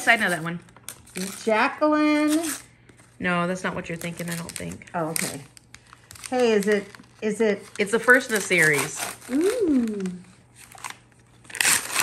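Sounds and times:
wrapping paper rustling: 0:00.0 - 0:01.6, 0:02.2 - 0:12.0
paper ripping: 0:06.1 - 0:12.0.

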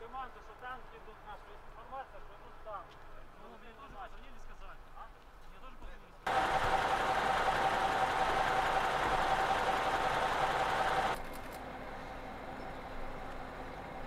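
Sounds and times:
steady whine: 0:06.3 - 0:14.0
vehicle engine running: 0:06.3 - 0:14.0.

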